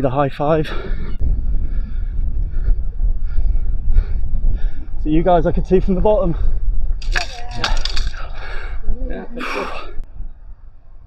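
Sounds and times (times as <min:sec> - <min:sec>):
strong wind buffeting microphone: 0:00.0 - 0:11.0
crackling and rustling: 0:07.0 - 0:08.6.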